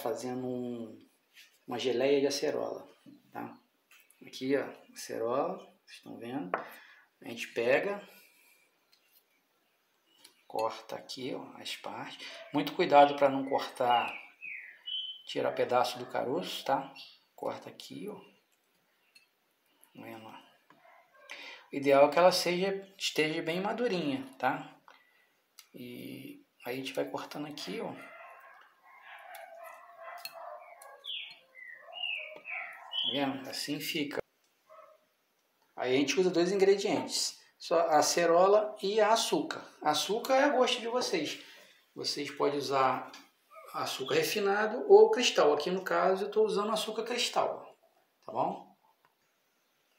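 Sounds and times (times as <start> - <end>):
birds chirping: 1.7 - 22.6, 23.2 - 35.0, 35.6 - 49.9.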